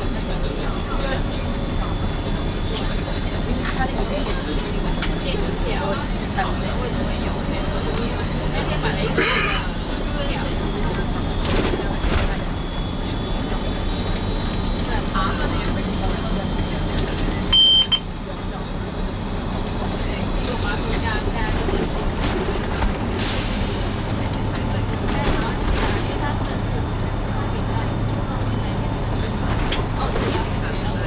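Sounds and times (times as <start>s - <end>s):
bus engine hum: 0.0s - 31.0s
road noise: 0.0s - 31.0s
short high electronic beep: 17.5s - 18.1s.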